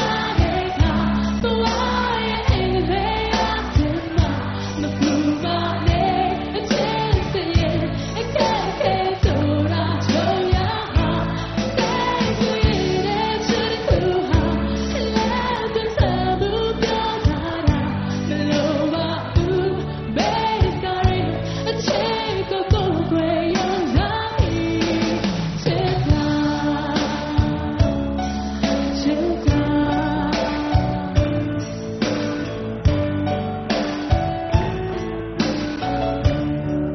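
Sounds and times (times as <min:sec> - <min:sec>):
woman singing: 0:00.0 - 0:31.5
rock band playing: 0:00.0 - 0:36.9.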